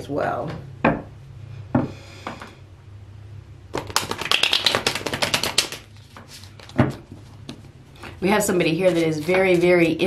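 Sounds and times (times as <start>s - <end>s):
cards being shuffled: 3.7s - 7.7s, 8.8s - 10.0s.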